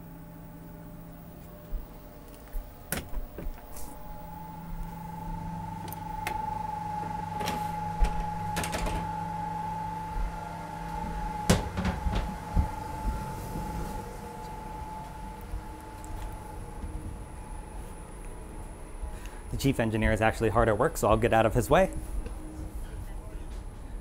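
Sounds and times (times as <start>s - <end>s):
constant high whine: 0.0s - 24.0s
shipboard machinery hum: 0.0s - 24.0s.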